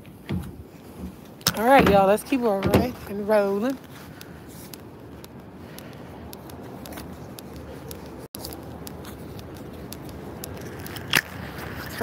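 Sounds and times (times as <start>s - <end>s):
footsteps on brick paving: 0.0s - 12.0s.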